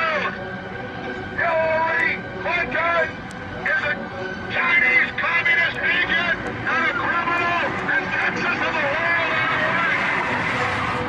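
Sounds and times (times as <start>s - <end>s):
man shouting through a megaphone: 0.0s - 0.4s, 1.4s - 10.5s.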